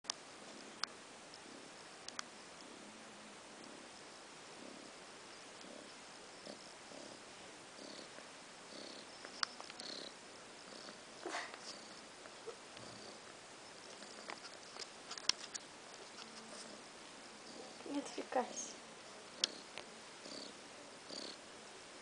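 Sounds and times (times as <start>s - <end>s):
cat purring: 0.2s - 21.5s
soft rustling of blanket: 2.6s - 21.4s.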